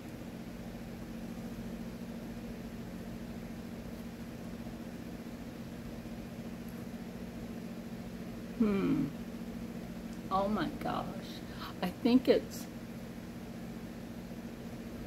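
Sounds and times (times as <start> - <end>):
low room hum with hiss: 0.0 - 15.0.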